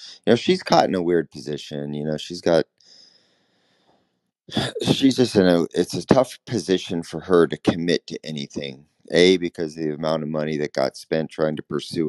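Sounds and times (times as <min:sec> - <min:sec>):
man speaking over voice call: 0:00.0 - 0:02.6, 0:04.5 - 0:12.0
faint breath-like noise: 0:02.8 - 0:03.9, 0:04.5 - 0:09.4.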